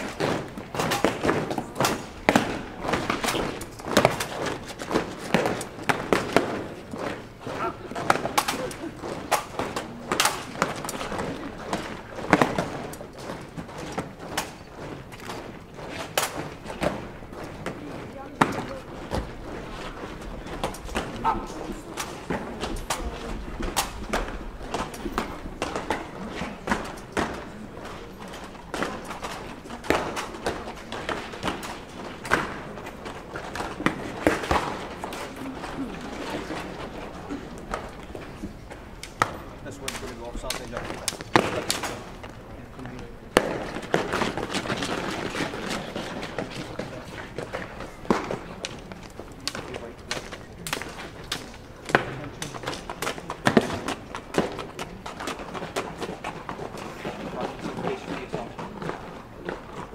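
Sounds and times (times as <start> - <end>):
crowd chatter: 0.0 - 59.9.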